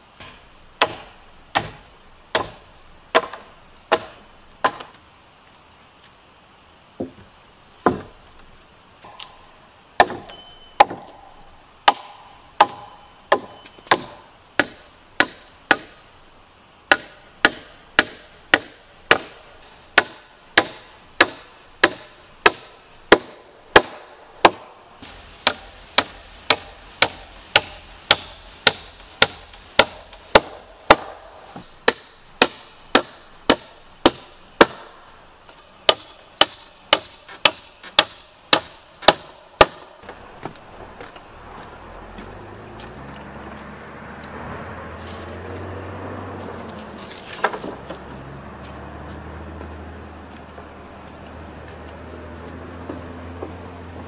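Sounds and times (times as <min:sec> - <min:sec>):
hammer driving nails into wood: 0:00.2 - 0:05.0.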